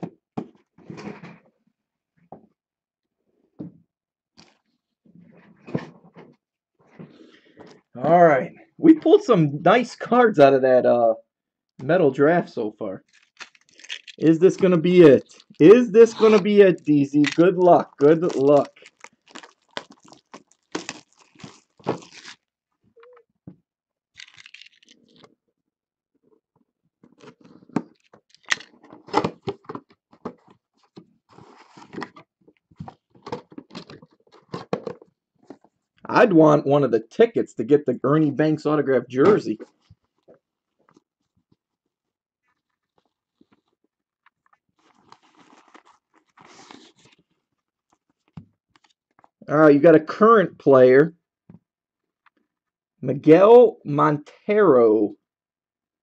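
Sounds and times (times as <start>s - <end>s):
cardboard packaging tearing: 13.1s - 22.4s.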